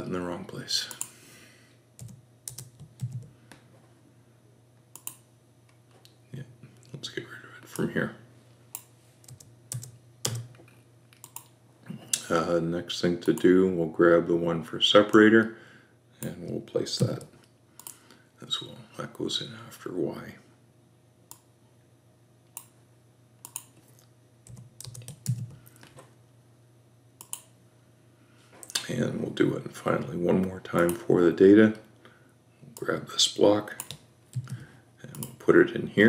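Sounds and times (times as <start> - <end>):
faint steady hum: 0.0 - 36.0
computer keyboard keystrokes: 2.0 - 3.3, 5.0 - 5.2, 8.8 - 10.5, 11.2 - 11.5, 23.4 - 23.7, 24.5 - 25.6, 27.2 - 27.5, 33.8 - 35.4.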